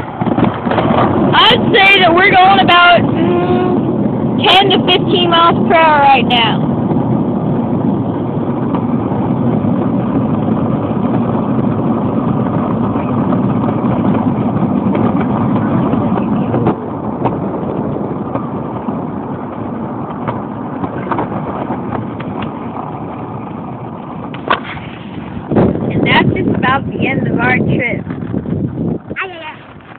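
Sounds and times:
cart wheels rumbling over pavement: 0.0s - 29.9s.

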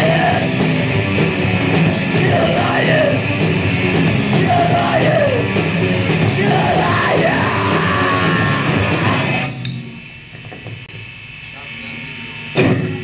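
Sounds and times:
yelled vocals: 0.0s - 9.5s
hardcore punk band: 0.0s - 10.0s.

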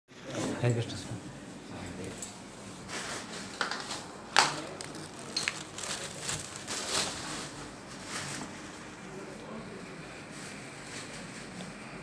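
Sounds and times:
rustling and handling noises: 1.9s - 9.0s.

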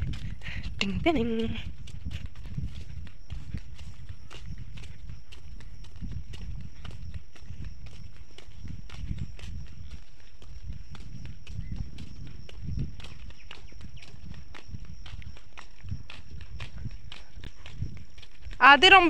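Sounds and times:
footsteps on dirt path: 0.0s - 19.0s.

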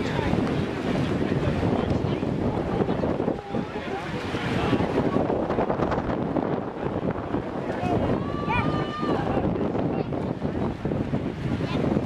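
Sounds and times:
spectators' voices: 0.0s - 12.0s
wind buffeting microphone: 0.0s - 12.0s.

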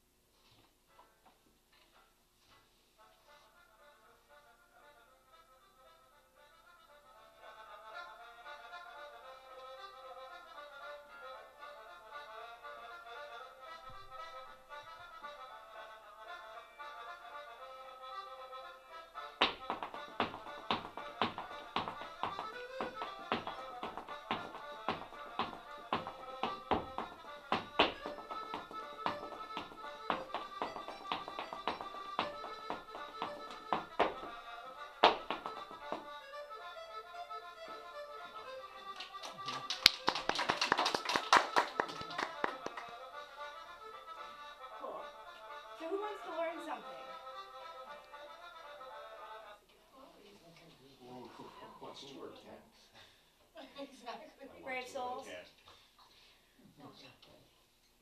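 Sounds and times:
traditional dance tune with accordion: 3.0s - 49.7s
dance shoes tapping: 19.3s - 36.6s, 39.8s - 43.0s.

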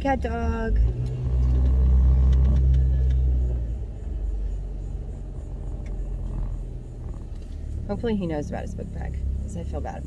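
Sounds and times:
engine and road rumble in car cabin: 0.0s - 10.0s.

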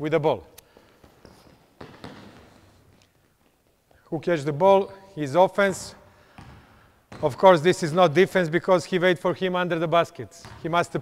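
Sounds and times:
footfalls of players running: 0.7s - 4.1s
thump echoing in hall: 1.8s - 2.6s.

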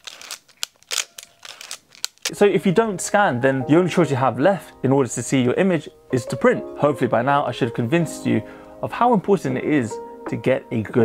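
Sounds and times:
camera shutter clicking: 0.0s - 2.3s.

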